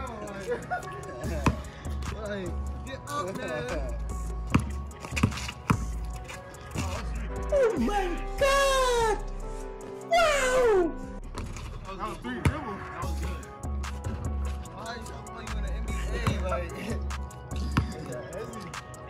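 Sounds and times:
background music with bass: 0.0s - 19.0s
basketball bouncing on asphalt: 1.3s - 1.6s, 4.4s - 6.1s, 12.4s - 12.7s, 17.6s - 18.1s.

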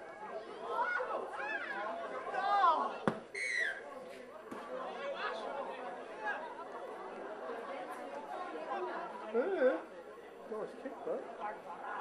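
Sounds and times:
voices chattering and calling out: 0.0s - 12.0s.

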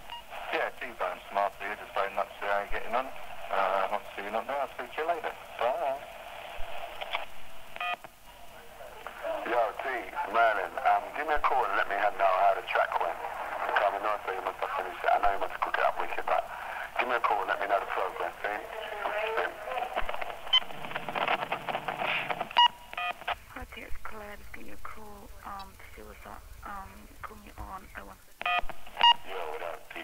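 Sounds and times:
speech over a telephone line: 0.3s - 6.1s, 8.3s - 20.4s, 23.2s - 28.4s, 29.0s - 30.0s.

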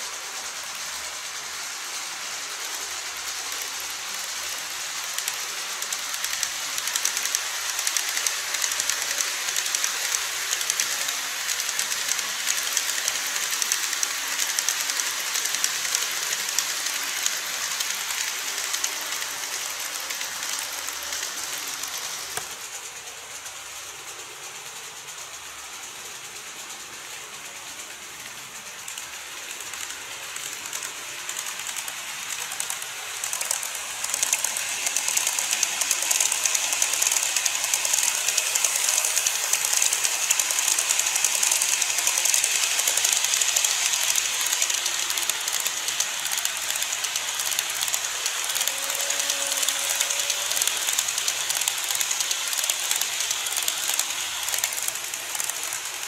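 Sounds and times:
model train wheels clattering: 0.0s - 56.0s.

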